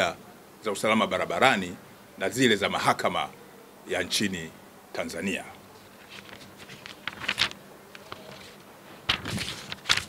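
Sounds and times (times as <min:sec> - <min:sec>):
paper rustling: 0:05.8 - 0:10.0.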